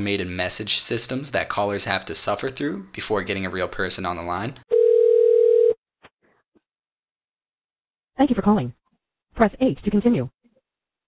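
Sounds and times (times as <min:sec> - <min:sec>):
telephone ringing tone: 0:04.7 - 0:05.8.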